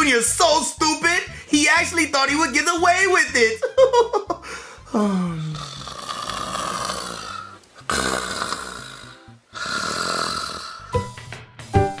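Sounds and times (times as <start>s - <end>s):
person making snoring sounds: 4.8s - 11.1s.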